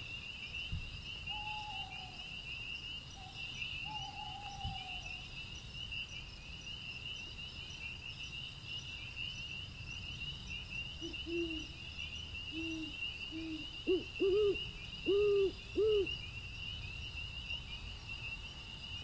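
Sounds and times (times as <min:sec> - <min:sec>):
crickets chirping: 0:00.0 - 0:19.0
owl hooting: 0:11.0 - 0:11.6, 0:12.5 - 0:16.2.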